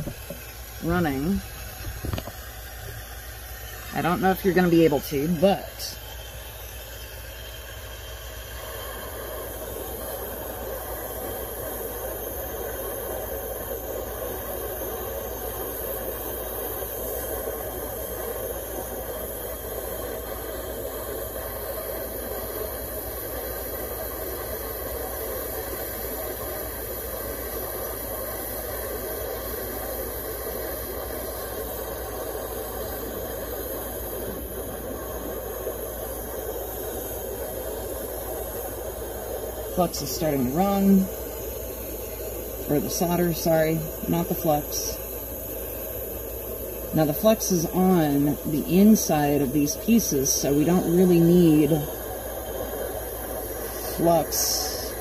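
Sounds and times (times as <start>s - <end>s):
gas torch flame hissing: 0.0s - 55.0s.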